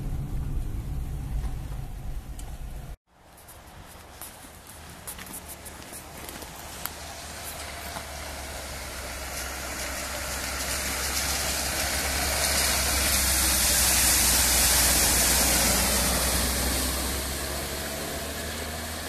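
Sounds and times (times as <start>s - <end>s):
car engine running: 0.0s - 3.0s
water hissing from tyres: 0.1s - 19.0s.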